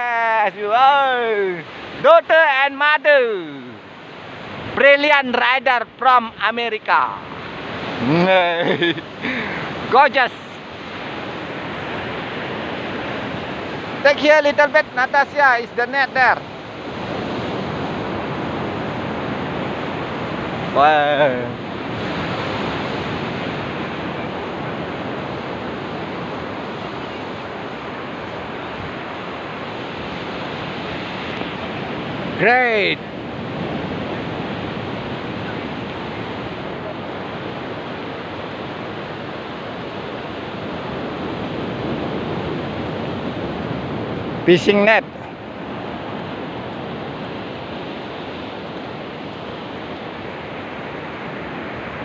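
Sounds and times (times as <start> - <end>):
ocean surf breaking: 0.0 - 52.0.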